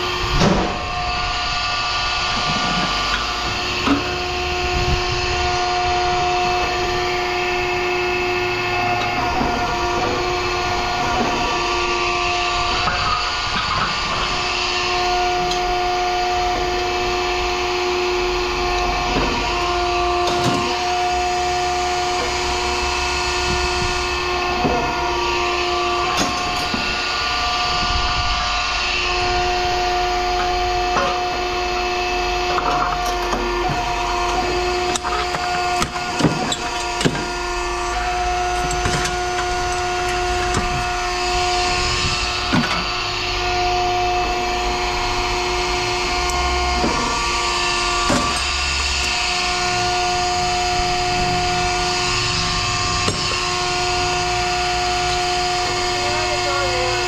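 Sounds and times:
steady machine hum: 0:00.0 - 0:57.0
scrap metal knocks and clanks: 0:08.3 - 0:15.7, 0:32.3 - 0:43.1, 0:46.2 - 0:56.0.

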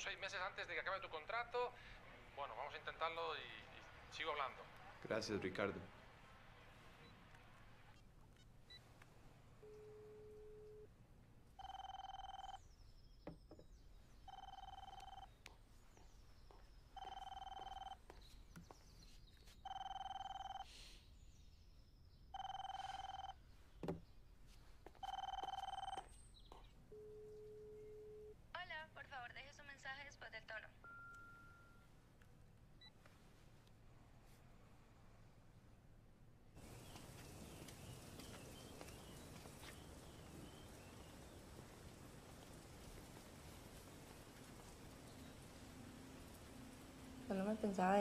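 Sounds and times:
mobile phone ringing: 0:11.6 - 0:12.6, 0:14.3 - 0:15.3, 0:17.0 - 0:18.0, 0:19.6 - 0:20.7, 0:22.4 - 0:23.4, 0:25.0 - 0:26.1
short low beep: 0:30.8 - 0:31.8.

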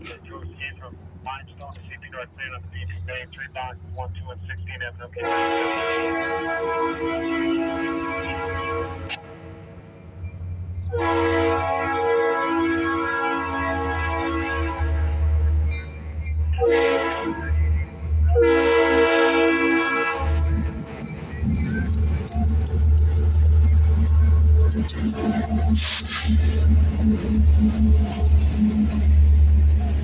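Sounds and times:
deep rumble of locomotives: 0:00.0 - 0:30.0
locomotive air horn blasts: 0:05.2 - 0:09.5, 0:10.9 - 0:15.5, 0:16.6 - 0:17.5, 0:18.3 - 0:20.7
clicks of train wheels: 0:20.6 - 0:30.0.

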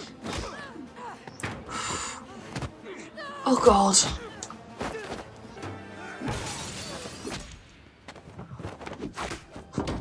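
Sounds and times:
tense orchestral music: 0:00.0 - 0:08.3.

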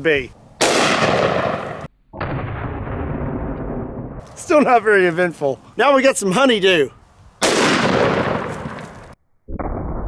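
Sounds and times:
slowed-down gunshot boom: 0:00.6 - 0:04.2, 0:07.4 - 0:10.0.

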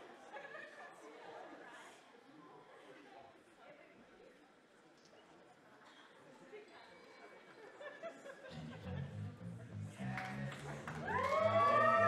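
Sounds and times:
low repeating notes: 0:08.5 - 0:12.0.

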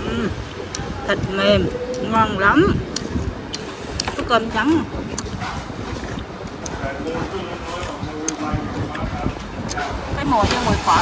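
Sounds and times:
eatery room noise: 0:00.0 - 0:11.0.

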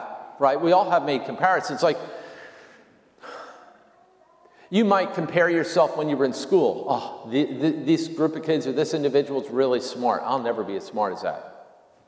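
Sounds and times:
man speaking: 0:00.0 - 0:02.3, 0:04.7 - 0:11.6.

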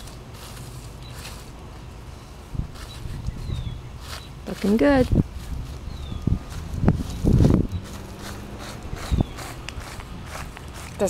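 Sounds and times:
hands rustling mulch: 0:00.0 - 0:11.0.

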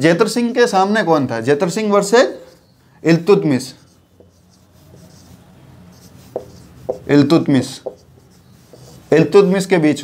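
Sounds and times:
marker pen writing on whiteboard: 0:02.0 - 0:09.5.

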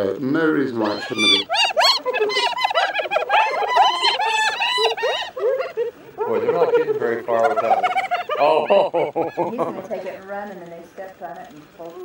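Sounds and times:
hyenas giggling: 0:00.8 - 0:10.2.

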